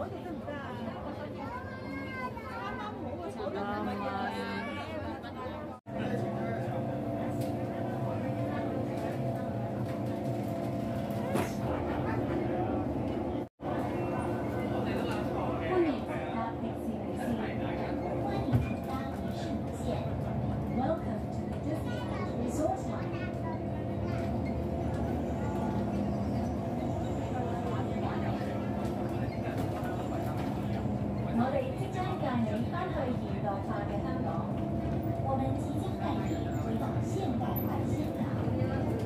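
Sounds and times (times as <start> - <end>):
passengers chattering: 0.0 - 39.0
train rumbling: 17.3 - 39.0.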